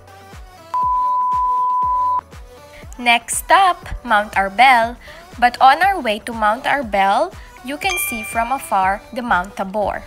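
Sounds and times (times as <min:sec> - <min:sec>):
steady test-tone bleep: 0:00.8 - 0:02.2, 0:07.8 - 0:09.0.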